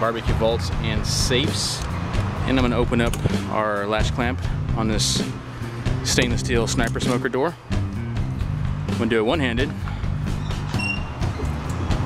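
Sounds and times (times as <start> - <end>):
background music with bass line: 0.0 - 12.0
metal door swinging open: 10.3 - 11.8.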